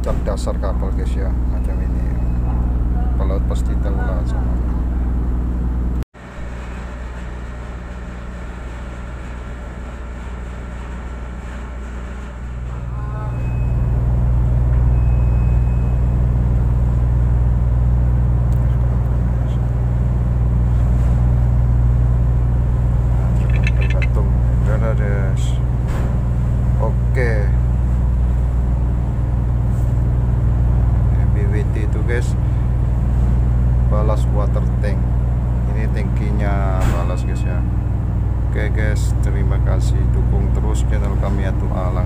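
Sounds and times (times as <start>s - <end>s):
ship machinery drone: 0.0s - 42.0s.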